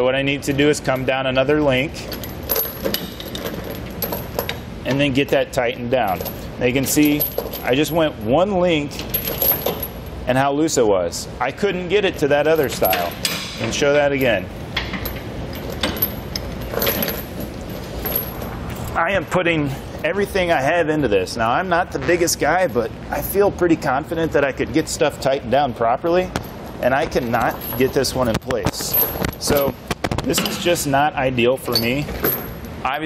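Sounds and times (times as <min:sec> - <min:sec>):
steel chain clinking and rattling: 0:02.0 - 0:04.6, 0:06.0 - 0:08.0, 0:08.9 - 0:10.1, 0:14.2 - 0:18.9, 0:27.2 - 0:30.8, 0:31.6 - 0:32.6.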